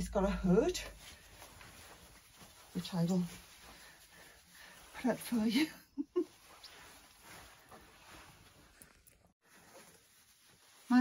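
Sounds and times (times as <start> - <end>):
woman speaking: 0.0 - 1.0, 2.8 - 3.4, 5.0 - 5.8
fabric rustling: 0.0 - 11.0
soft room noise: 0.0 - 11.0.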